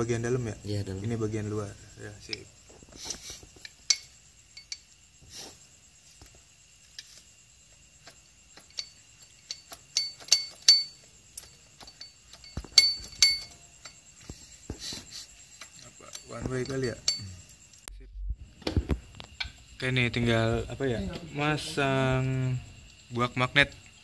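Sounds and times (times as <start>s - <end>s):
metal gears clinking: 8.6s - 14.1s.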